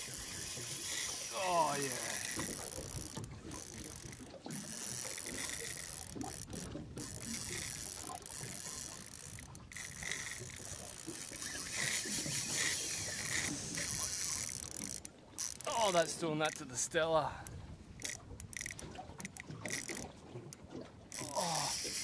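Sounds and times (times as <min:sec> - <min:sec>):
fishing reel whirring and clicking: 0:00.0 - 0:16.6, 0:18.0 - 0:22.0.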